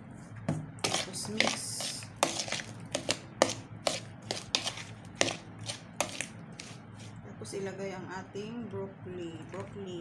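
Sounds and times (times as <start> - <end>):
metal spoon scraping plastic bowl: 0.8 - 7.1.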